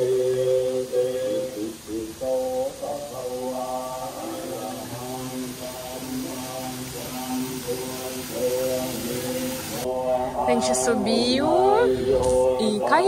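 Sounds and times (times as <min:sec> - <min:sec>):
low drone: 0:00.0 - 0:12.8
chanting vocal music: 0:00.0 - 0:13.0.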